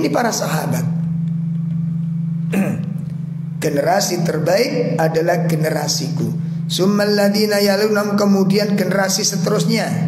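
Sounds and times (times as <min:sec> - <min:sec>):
person talking: 0:00.0 - 0:01.0
steady low hum: 0:00.0 - 0:10.0.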